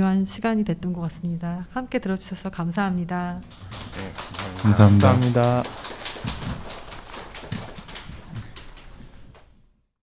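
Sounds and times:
audience clapping: 3.4s - 9.6s.

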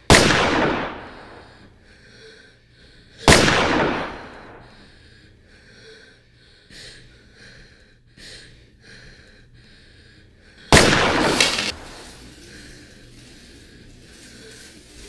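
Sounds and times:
person breathing: 0.8s - 15.0s
handgun shots: 10.8s - 12.0s.

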